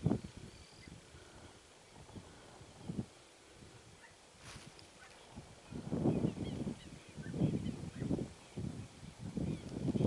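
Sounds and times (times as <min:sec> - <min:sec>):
faint high bird chirps: 0:00.0 - 0:01.0
wind buffeting microphone: 0:00.0 - 0:10.0.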